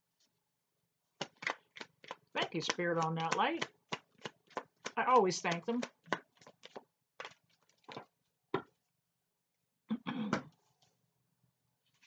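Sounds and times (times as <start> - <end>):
cards shuffled: 1.2 - 3.4.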